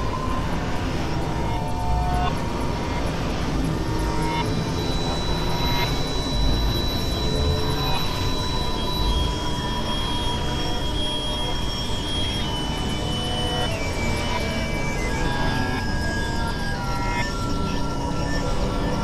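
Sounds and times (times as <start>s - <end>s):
noisy synthesizer drone: 0.0s - 19.0s
thin high synthesizer tones: 0.0s - 19.0s.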